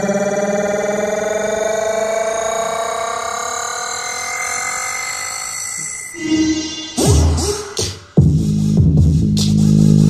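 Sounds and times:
sustained synth tone: 0.0s - 7.8s.

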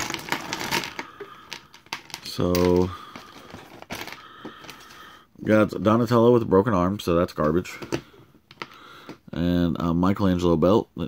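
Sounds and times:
plastic pieces clattering: 0.0s - 5.0s
plastic bag crinkling: 0.0s - 5.2s.

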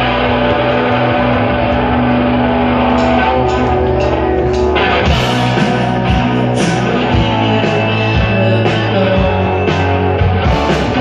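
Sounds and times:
distorted electric guitars and bass: 0.0s - 11.0s.

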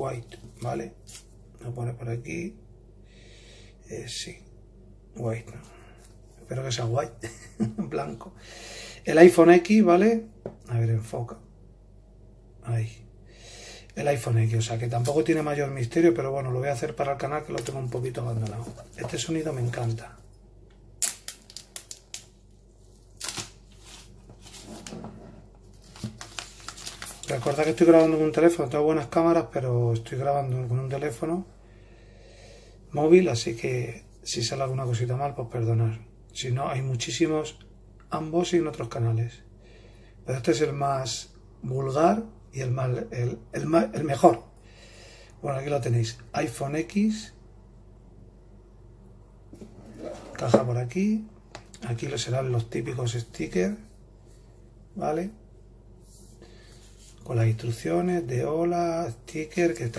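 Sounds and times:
steady low hum: 0.0s - 59.9s
plastic shrink-wrap crinkling and tearing: 21.0s - 22.4s, 23.1s - 24.6s, 25.8s - 27.8s.

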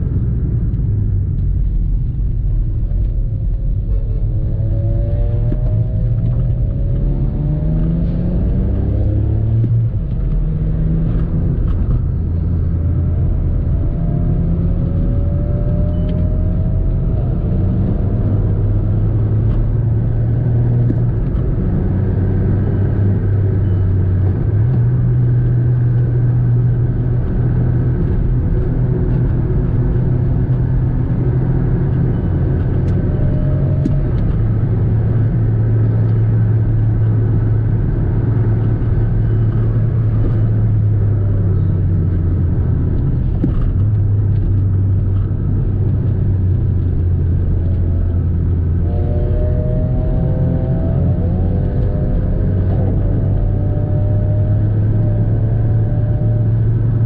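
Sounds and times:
car engine drone: 0.0s - 57.0s
road and tyre rumble: 0.0s - 57.0s.

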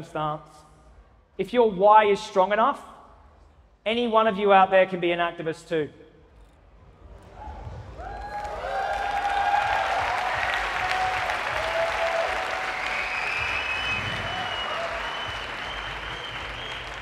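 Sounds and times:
audience cheering and calling: 7.2s - 17.0s
audience applauding: 8.0s - 17.0s.

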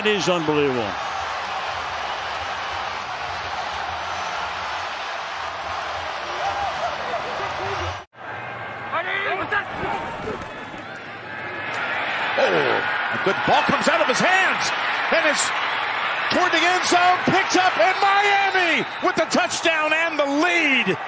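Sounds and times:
stadium crowd cheering: 0.0s - 21.0s.

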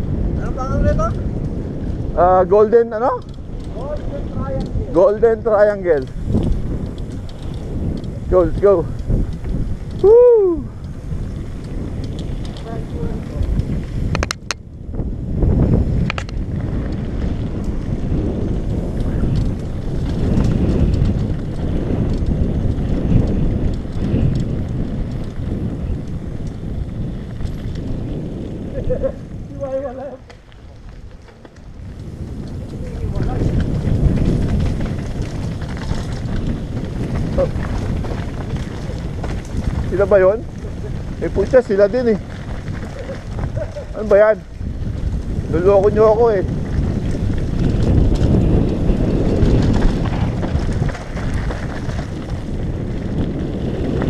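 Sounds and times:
mountain bike rattling over gravel: 0.0s - 54.0s
wind on microphone: 0.0s - 54.0s.

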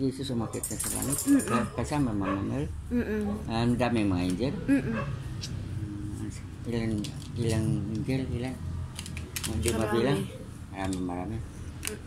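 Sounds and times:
young person moaning: 4.7s - 5.0s.

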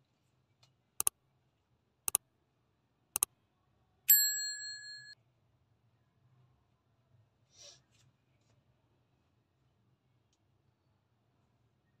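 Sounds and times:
bright bell chime: 4.1s - 5.2s.

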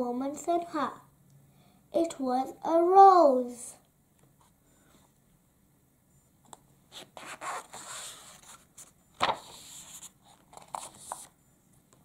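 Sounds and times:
book page rustling: 7.0s - 11.3s.

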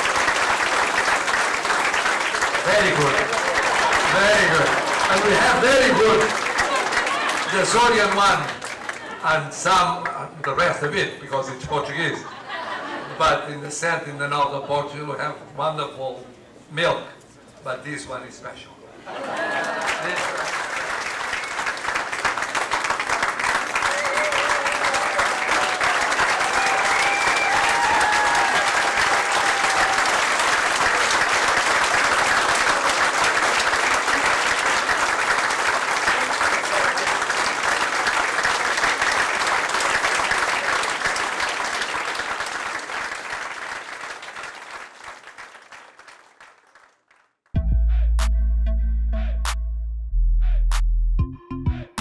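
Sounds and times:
crowd applauding: 0.0s - 10.6s, 19.1s - 47.5s.

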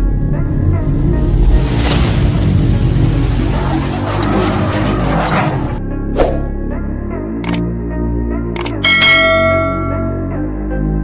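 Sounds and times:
low sustained music: 5.8s - 11.0s
bell ding: 8.8s - 10.5s.

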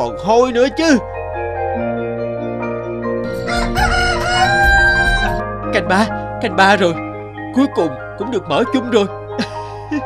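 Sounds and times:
soft background music: 0.0s - 10.0s
rooster crowing: 3.3s - 5.4s.

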